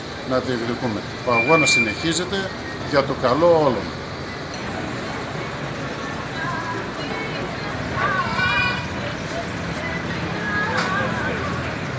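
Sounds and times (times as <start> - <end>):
traffic rumble: 0.0 - 11.9
indistinct voices talking: 0.6 - 11.9.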